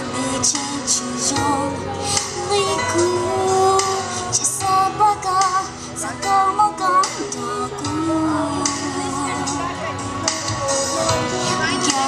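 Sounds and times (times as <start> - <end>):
musical accompaniment with beat: 0.0 - 12.0
woman singing into a microphone: 0.0 - 12.0.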